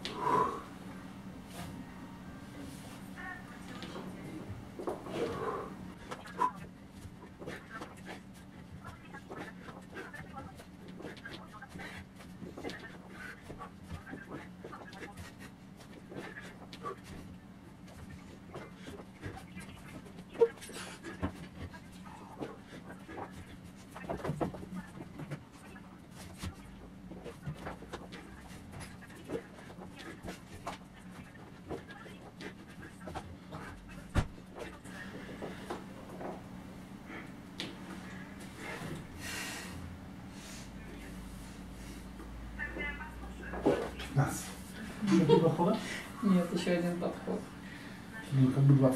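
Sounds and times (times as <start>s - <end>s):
man panting: 0.0s - 0.9s, 4.8s - 6.2s, 37.0s - 40.8s
low hum: 0.0s - 6.1s.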